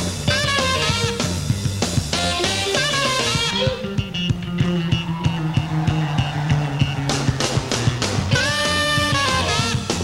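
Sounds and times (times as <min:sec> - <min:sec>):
bass line: 0:00.0 - 0:10.0.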